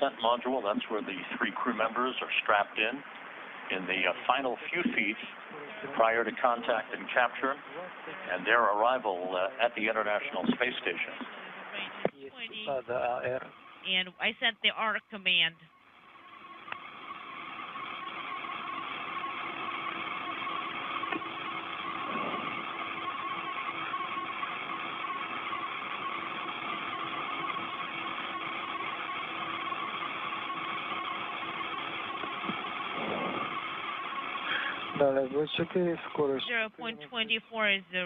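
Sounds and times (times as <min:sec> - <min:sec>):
radio static hiss: 0:00.0 - 0:15.6, 0:16.4 - 0:38.0
faint hum: 0:00.0 - 0:38.0.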